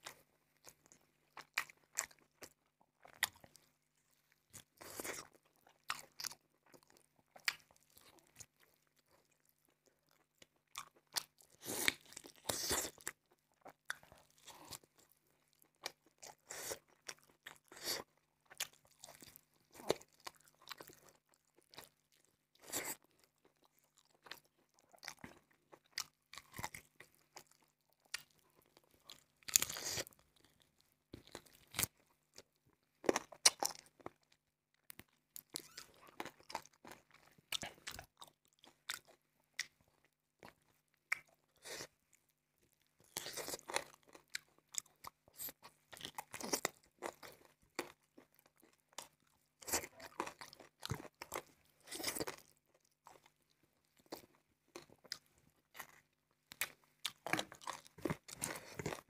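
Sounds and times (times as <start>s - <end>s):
man chewing with crunches: 0.0s - 3.7s, 4.3s - 59.0s.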